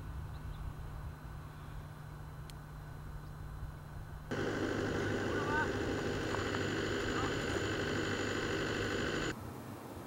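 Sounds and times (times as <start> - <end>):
faint outdoor hiss: 0.0 - 10.0
distant tractor engine running: 4.3 - 9.4.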